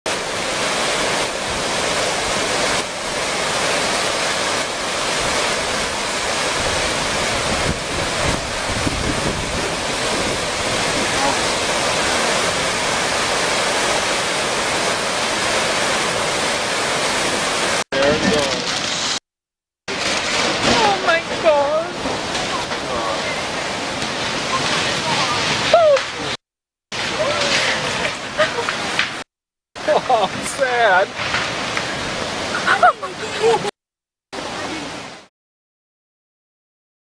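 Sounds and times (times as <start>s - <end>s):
floodwater rushing: 0.0s - 19.2s, 19.9s - 33.7s, 34.4s - 35.3s.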